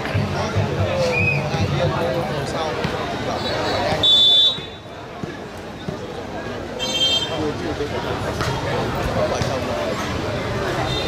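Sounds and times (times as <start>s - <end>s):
crowd chatter: 0.0s - 11.0s
referee's whistle blast: 3.5s - 4.8s.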